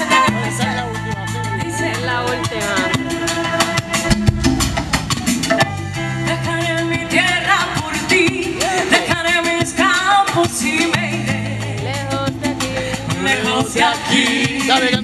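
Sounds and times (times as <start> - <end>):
congas and timbales: 0.0 - 15.0.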